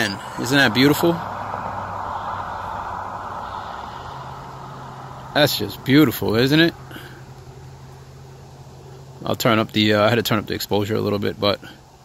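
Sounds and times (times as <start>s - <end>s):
car passing on road: 0.0s - 10.4s
low steady hum: 0.0s - 12.0s.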